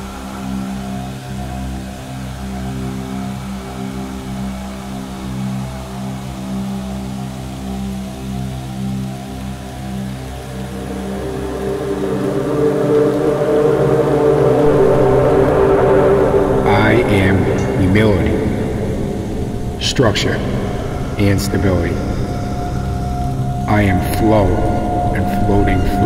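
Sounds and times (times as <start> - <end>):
ambient drone music: 0.0 - 26.0.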